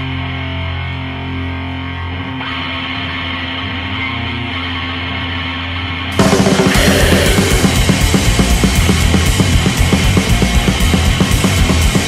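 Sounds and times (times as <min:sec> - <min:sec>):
distorted electric guitar chords: 0:00.0 - 0:12.0.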